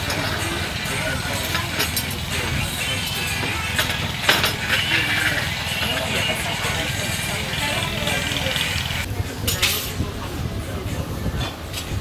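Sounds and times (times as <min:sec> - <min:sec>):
distant indistinct talking: 0:00.0 - 0:12.0.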